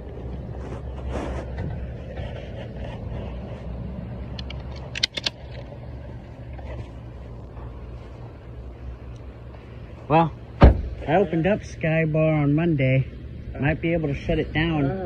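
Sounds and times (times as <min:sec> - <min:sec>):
car road and engine rumble: 0:00.0 - 0:15.0
sharp clicks: 0:04.3 - 0:05.7
loud thump: 0:10.6 - 0:11.1.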